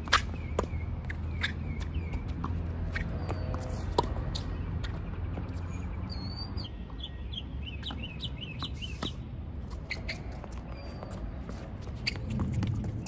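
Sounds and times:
racket hitting tennis ball: 2.9s - 4.5s
bird chirping: 4.4s - 9.2s.

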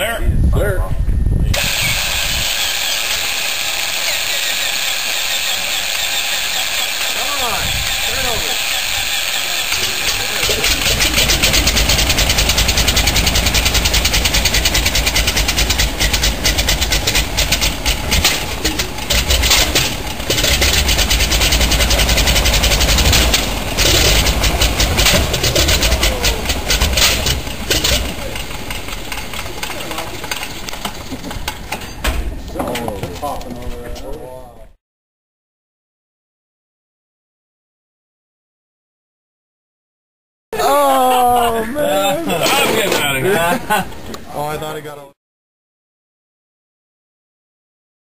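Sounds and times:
propeller noise: 1.5s - 33.7s
radial engine running: 1.6s - 31.9s.

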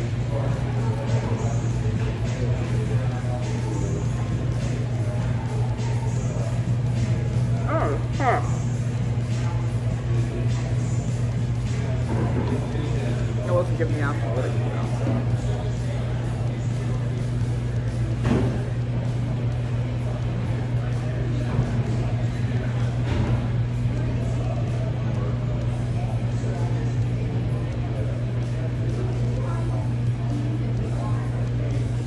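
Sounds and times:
quiet background music: 0.0s - 32.0s.

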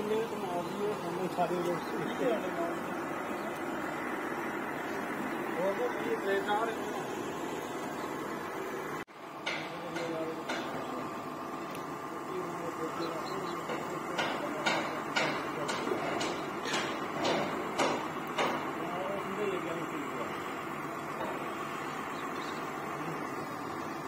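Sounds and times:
steady background hum: 0.0s - 24.0s
sharp knocks: 9.4s - 10.9s, 13.6s - 18.8s
faint voices: 9.5s - 17.5s, 18.4s - 24.0s.

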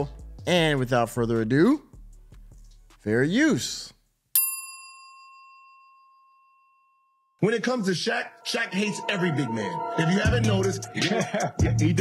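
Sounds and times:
bell ding: 4.4s - 7.4s.

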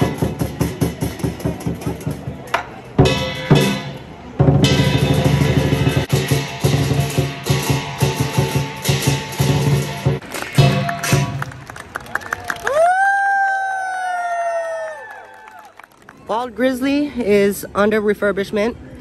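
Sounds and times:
rhythmic drumming and percussion: 0.0s - 12.2s.

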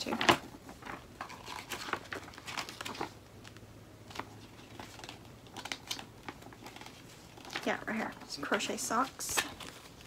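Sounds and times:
paper pages rustling: 0.0s - 10.0s.

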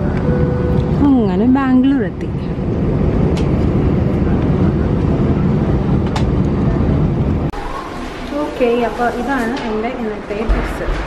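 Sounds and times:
airliner cabin rumble: 0.0s - 7.6s.

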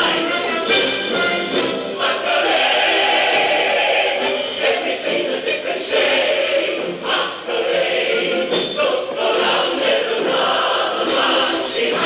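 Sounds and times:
chorus singing: 0.0s - 12.0s
orchestra playing: 0.0s - 12.0s.

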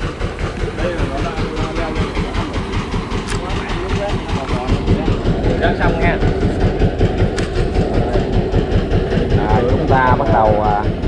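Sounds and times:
boat engine knocking: 0.0s - 11.0s.

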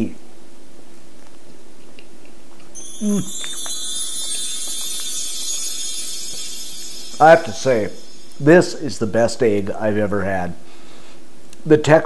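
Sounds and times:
shimmering twinkle sound effect: 2.8s - 10.2s.

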